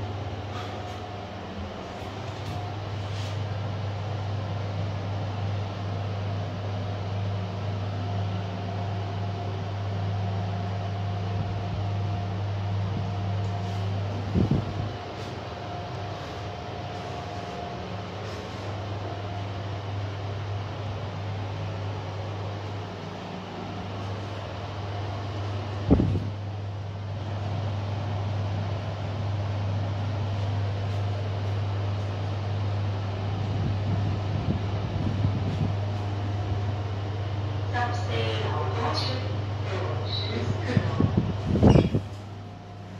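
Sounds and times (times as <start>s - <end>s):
elevator low hum: 0.0s - 42.9s.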